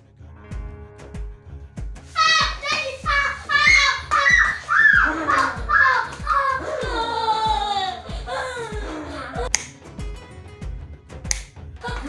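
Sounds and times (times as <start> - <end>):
music with steady beat: 0.4 - 12.0
sharp snaps: 9.5 - 9.9, 11.2 - 11.6.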